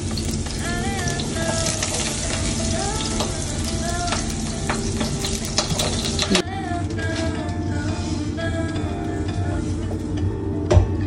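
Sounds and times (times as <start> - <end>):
garlic sizzling in hot oil: 0.0 - 6.4.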